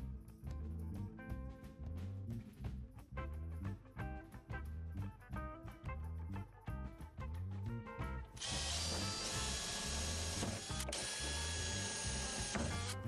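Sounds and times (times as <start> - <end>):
background music with bass: 0.0 - 13.0
cordless drill boring into wood: 8.4 - 13.0.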